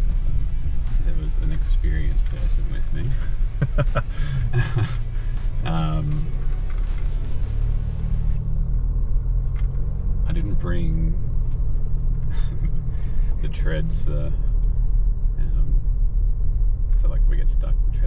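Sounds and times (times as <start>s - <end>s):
engine and tyres rumbling: 0.0s - 18.0s
light clicks and rattles: 8.5s - 15.4s, 16.6s - 18.0s.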